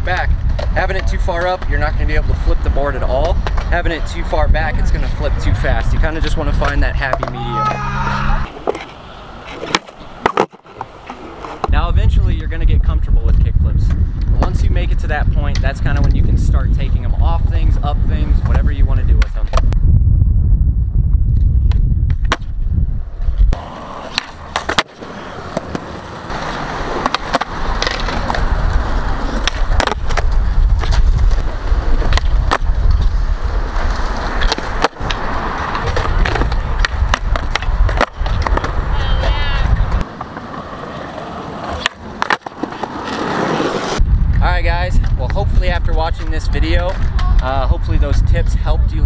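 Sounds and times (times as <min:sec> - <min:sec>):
skateboard wheels rolling on concrete: 0:00.0 - 0:49.0
skateboard tail pop and landing clacks: 0:21.7 - 0:22.5, 0:27.0 - 0:28.5.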